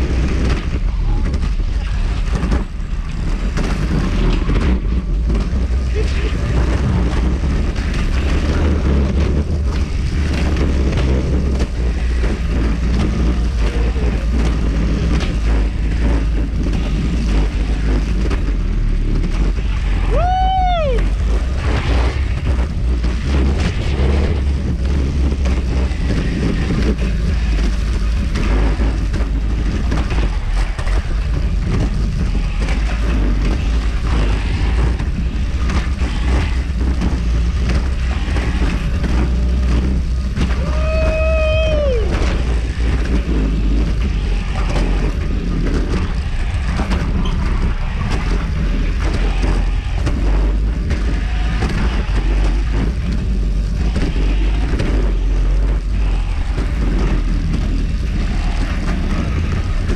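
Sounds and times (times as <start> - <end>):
wind rushing over microphone: 0.0 - 59.9
zipline trolley rumbling on rail: 0.0 - 59.9.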